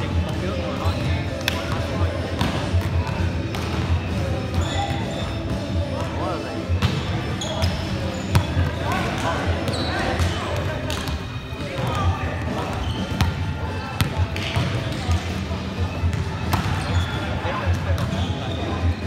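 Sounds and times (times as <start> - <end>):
sneakers squeaking on court: 0.9 - 6.2, 6.8 - 15.2, 15.8 - 19.0.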